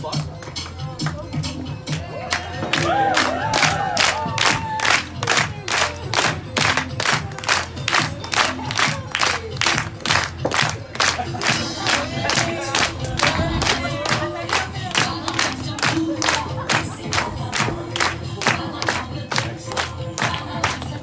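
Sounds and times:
dance music: 0:00.0 - 0:21.0
whoops and cheers: 0:01.9 - 0:05.1
audience clapping in unison: 0:01.9 - 0:21.0.

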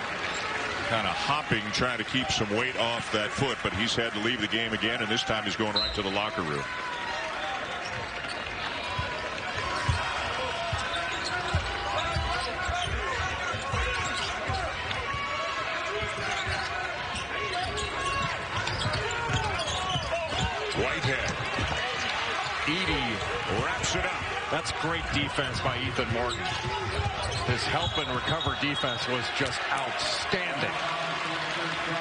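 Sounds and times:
arena crowd noise: 0:00.0 - 0:32.0
sneaker squeaks: 0:07.8 - 0:15.3, 0:16.0 - 0:24.0, 0:25.5 - 0:29.1.

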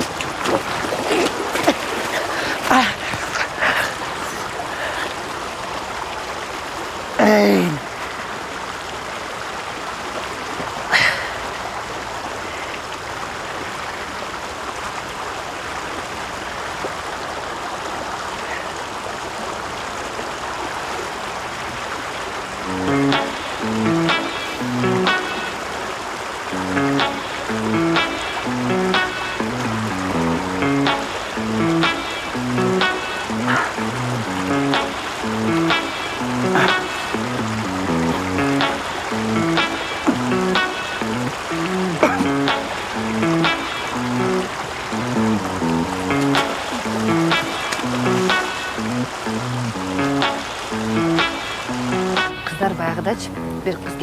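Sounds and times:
stream running over rocks: 0:00.0 - 0:54.0
music with a beat: 0:22.7 - 0:25.5, 0:26.6 - 0:52.7.

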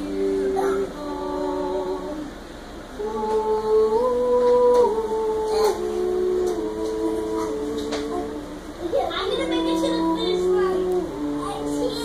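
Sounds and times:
girl and boy singing: 0:00.0 - 0:12.0.

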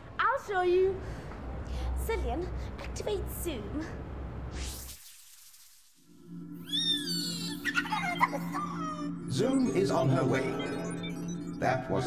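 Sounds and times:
low electronic hum: 0:06.0 - 0:12.0
warbling electronic chirps: 0:06.0 - 0:12.0.

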